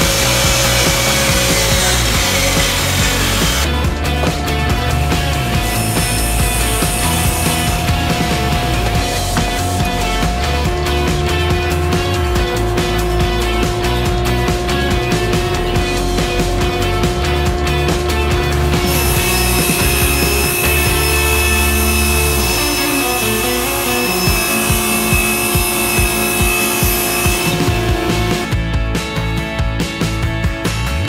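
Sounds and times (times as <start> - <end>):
table saw cutting plywood: 0.0 - 28.5
background music: 0.0 - 31.0.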